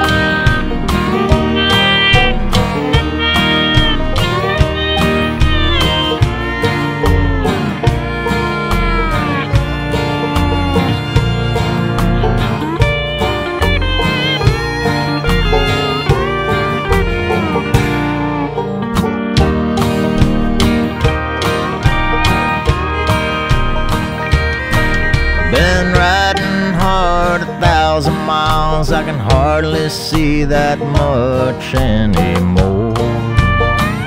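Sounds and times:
steady drum beat: 0.0 - 18.2, 19.4 - 29.6, 30.2 - 34.0
acoustic guitar: 0.0 - 34.0
bass: 0.0 - 34.0
fiddle melody: 0.0 - 34.0.

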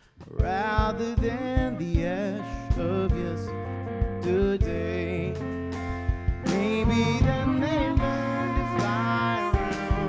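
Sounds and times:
bass line: 0.0 - 10.0
drums: 0.0 - 10.0
electric guitar: 0.0 - 10.0
man singing: 0.0 - 10.0.

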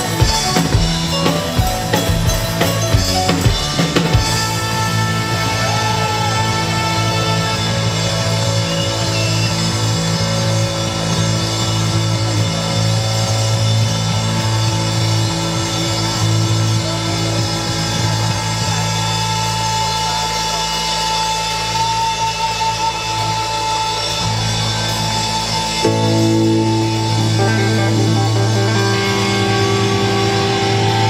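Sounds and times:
rock band playing live: 0.0 - 31.0.

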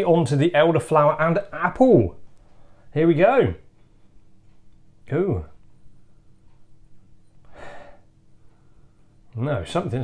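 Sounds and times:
man sniffing: 7.5 - 8.0.

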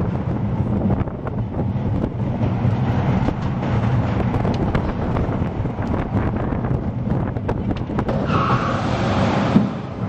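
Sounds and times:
roller coaster rumbling on track: 0.0 - 10.0
high-pitched brake squeal: 8.2 - 9.3.

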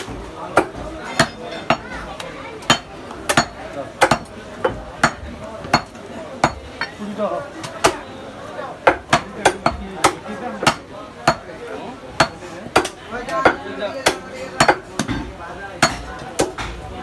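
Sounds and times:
cleaver chopping meat on wood: 2.6 - 6.7, 7.6 - 8.0, 8.8 - 11.5, 12.2 - 16.8.

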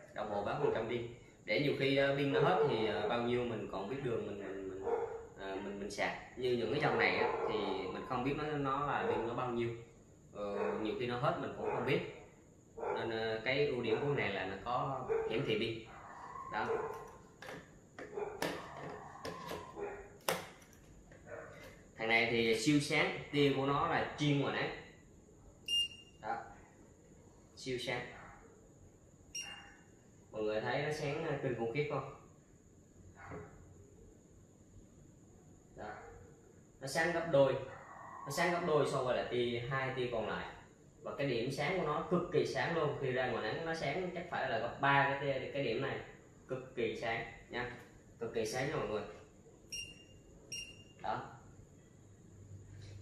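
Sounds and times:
high-pitched electronic beep: 49.7 - 51.0.

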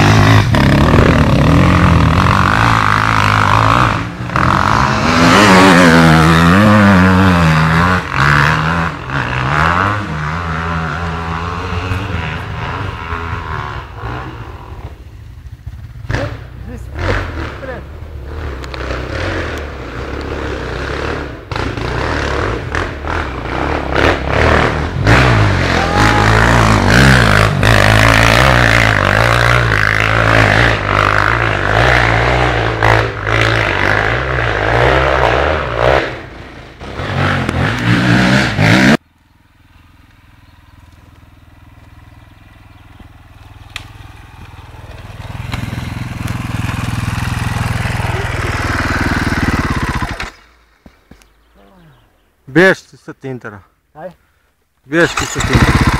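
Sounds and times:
dirt bike engines revving: 0.0 - 55.9.

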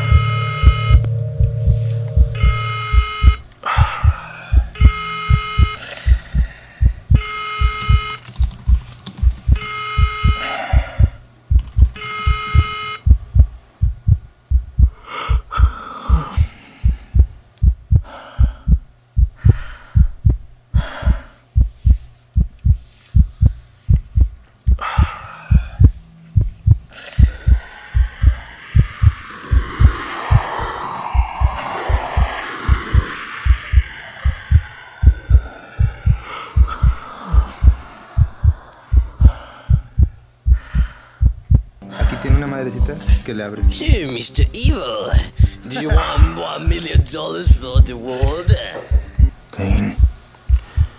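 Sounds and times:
electronic tones: 0.0 - 5.8, 7.1 - 8.2, 9.5 - 11.1
rushing noise: 0.0 - 6.4, 25.0 - 40.0
deep low thumps: 0.0 - 8.1, 9.5 - 11.6, 12.6 - 43.2, 48.9 - 49.4, 50.0 - 50.9.

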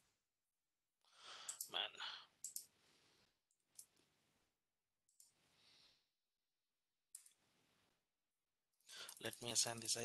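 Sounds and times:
computer mouse clicks: 1.5 - 1.7, 2.4 - 2.7.

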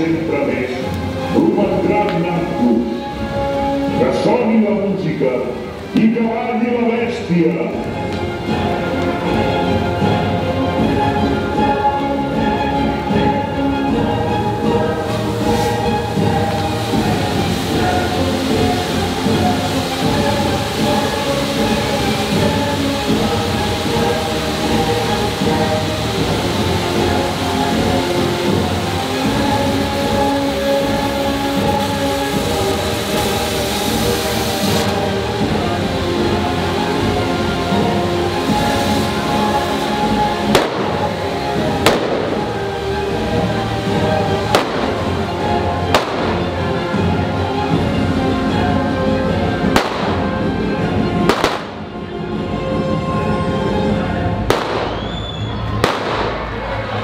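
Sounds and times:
music playing: 0.0 - 57.0
firecracker bangs: 40.5 - 42.7, 44.5 - 45.2, 45.9 - 46.6, 49.7 - 50.4, 51.3 - 51.8, 54.5 - 56.8.

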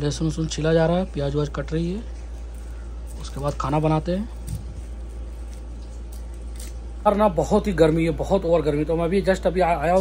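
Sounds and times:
steady low hum: 0.0 - 10.0
knife peeling garlic skin: 2.4 - 7.0.

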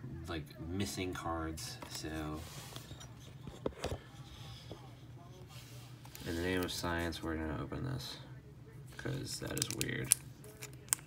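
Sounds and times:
hands handling foil pack: 9.4 - 11.0.

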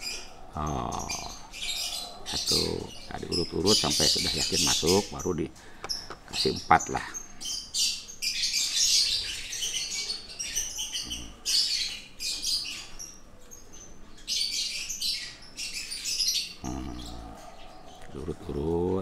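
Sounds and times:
high-pitched bird chirping: 0.0 - 19.0.

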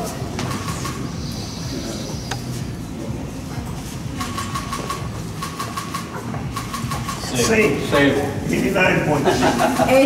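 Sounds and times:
crowded room hum: 0.0 - 10.0.

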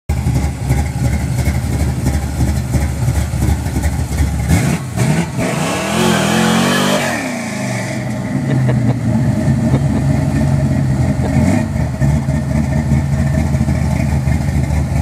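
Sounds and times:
car engine idling and revving: 0.1 - 15.0.

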